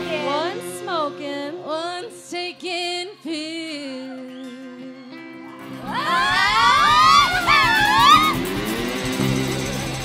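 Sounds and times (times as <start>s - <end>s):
people whooping and cheering: 4.0s - 8.5s
live band playing: 4.6s - 10.0s.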